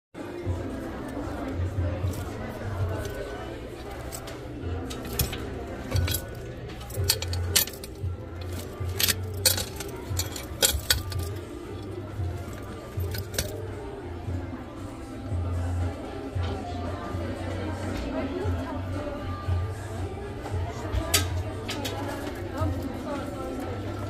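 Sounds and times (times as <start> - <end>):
store background music: 0.2 - 24.0
voices: 0.2 - 24.0
metal hardware clinking: 2.0 - 13.7.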